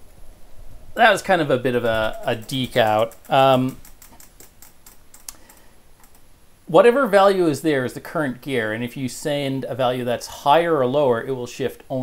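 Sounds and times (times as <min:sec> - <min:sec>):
fingers tapping on touchscreen: 0:01.9 - 0:06.2.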